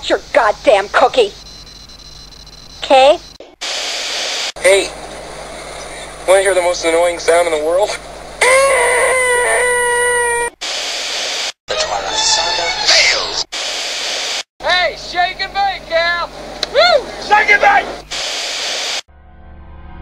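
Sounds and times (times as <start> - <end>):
man making nasal whine: 8.4 - 10.6
rising and falling squeals: 8.4 - 10.6, 11.7 - 13.4.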